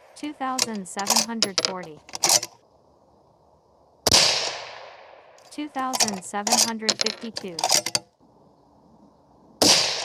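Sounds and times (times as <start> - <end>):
rifle shot: 4.1 - 5.4, 9.6 - 10.0.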